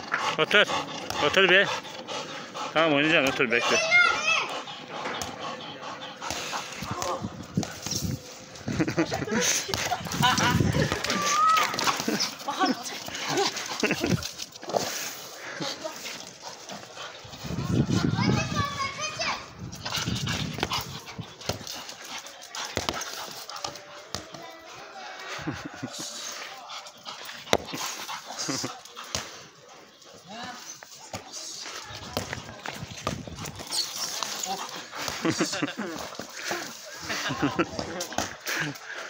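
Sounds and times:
voices: 0.0s - 39.0s.

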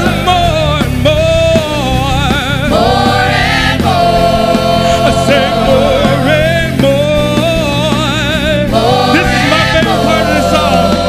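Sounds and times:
instrumental accompaniment: 0.0s - 11.0s
worship singers holding notes: 2.4s - 11.0s.

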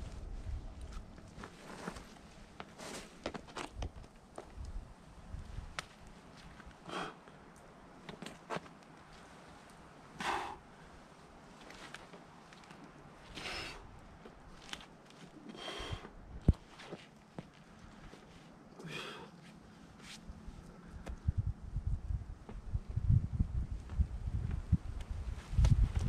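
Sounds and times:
climber sharp exhalations: 6.8s - 7.3s, 10.2s - 11.0s, 13.3s - 13.9s, 15.3s - 17.0s, 18.8s - 19.4s.

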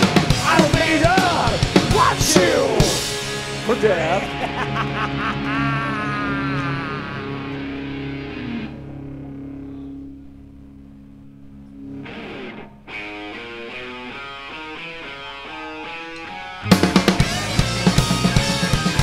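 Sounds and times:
distorted electric guitar: 0.0s - 19.0s.

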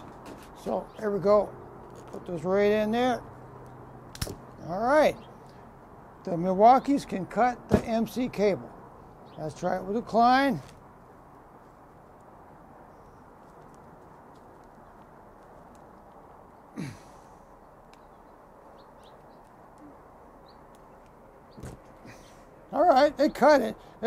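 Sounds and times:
sharp snap of pliers cutting: 4.1s - 4.4s.

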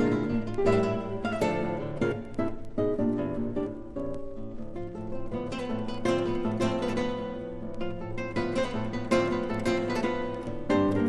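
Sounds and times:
classical guitar duet: 0.0s - 11.0s.

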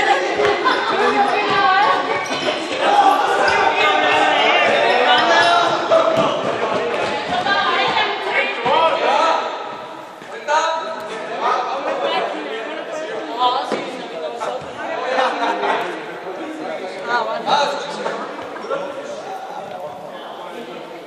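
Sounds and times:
people talking and calling out: 0.0s - 21.0s.

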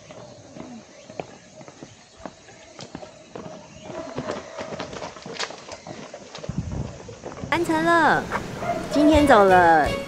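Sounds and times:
footsteps on hard trail: 0.0s - 9.3s.

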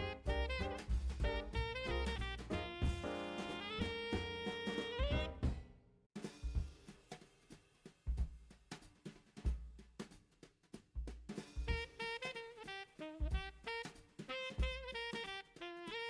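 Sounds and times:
held melody line: 0.0s - 5.4s
drum kit kick and snare hits: 0.0s - 16.0s.

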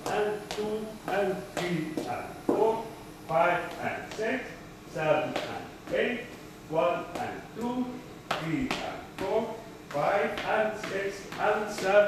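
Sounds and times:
footsteps tapping on tiled floor: 0.0s - 2.8s, 7.0s - 12.0s
man counting beats: 0.0s - 12.0s.

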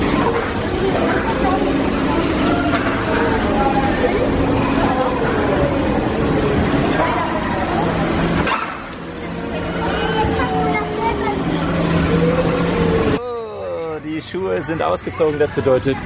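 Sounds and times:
bumper cars running: 0.0s - 13.2s
people and children's voices: 0.0s - 16.0s.

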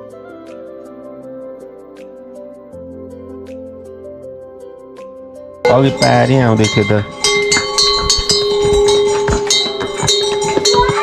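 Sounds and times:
donkey bells ringing: 5.6s - 11.0s
hooves on stony lane: 5.7s - 11.0s.

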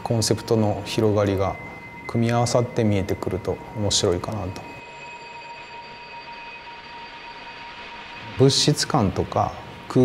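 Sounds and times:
thin high tones: 0.0s - 10.0s.

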